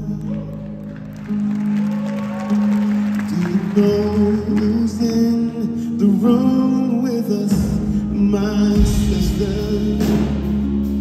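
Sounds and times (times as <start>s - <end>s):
crowd clapping: 0.0s - 5.5s
live band playing slowly: 0.0s - 11.0s.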